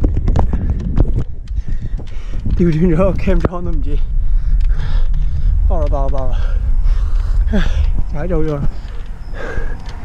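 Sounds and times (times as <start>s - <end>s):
wind and road noise rumble: 0.0s - 10.0s.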